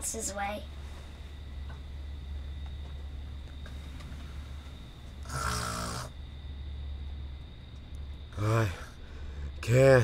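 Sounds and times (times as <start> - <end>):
steady low hum: 0.0 - 10.0
child snoring: 5.2 - 6.2.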